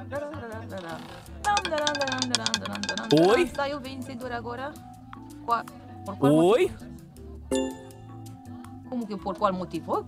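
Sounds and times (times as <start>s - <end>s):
background music: 0.8s - 10.0s
person talking: 2.9s - 3.6s.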